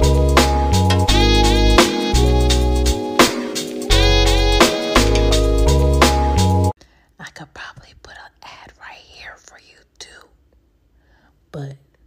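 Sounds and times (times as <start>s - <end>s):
jazz music: 0.0s - 6.7s
soft whispered speech: 7.2s - 10.4s.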